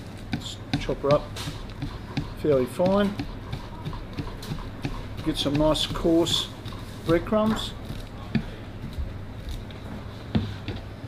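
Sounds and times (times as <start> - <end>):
knife chopping on plastic board: 0.2 - 9.6.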